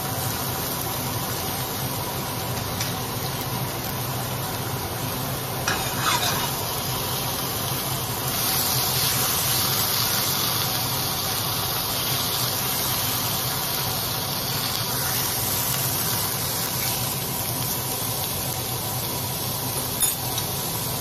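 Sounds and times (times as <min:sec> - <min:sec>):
steak sizzling in a skillet: 0:00.0 - 0:21.0
fork scraping a pan: 0:05.7 - 0:06.6.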